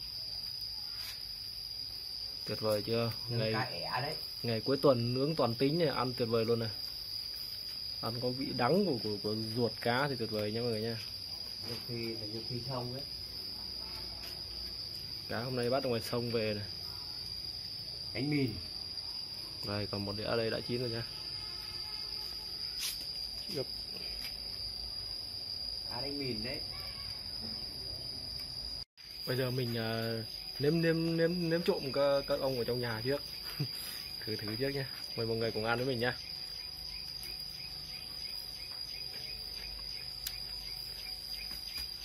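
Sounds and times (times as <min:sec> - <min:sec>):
high-pitched insect trill: 0:00.0 - 0:42.0.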